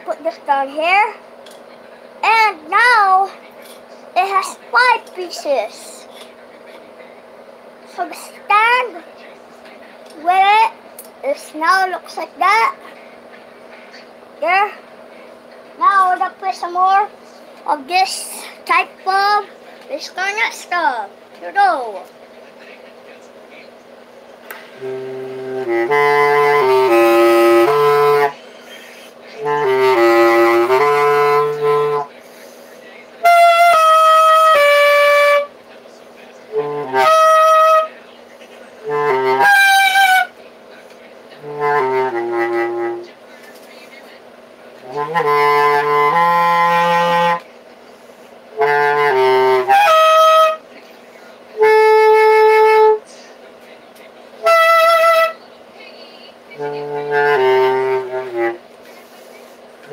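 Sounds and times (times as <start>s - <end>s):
bass clarinet phrases: 24.8s - 28.4s, 29.4s - 32.1s, 33.2s - 35.5s, 36.5s - 37.9s, 38.8s - 40.3s, 41.4s - 43.1s, 44.8s - 47.4s, 48.6s - 50.6s, 51.6s - 53.0s, 54.4s - 55.4s, 56.6s - 58.6s.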